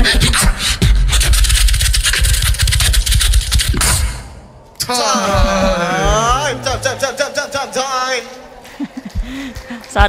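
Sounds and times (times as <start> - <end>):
beatboxing through a pa: 0.0 - 4.1, 4.8 - 7.6
heavy bass: 2.3 - 7.8.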